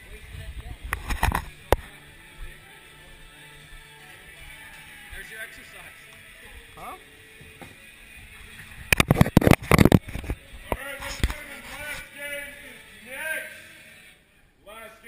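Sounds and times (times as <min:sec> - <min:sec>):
voices: 0:00.0 - 0:08.4
music: 0:00.0 - 0:15.0.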